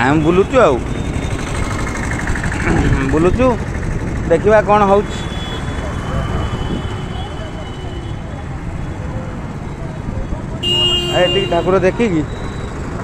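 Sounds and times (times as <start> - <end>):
motorbikes and rickshaws passing: 0.0 - 13.0.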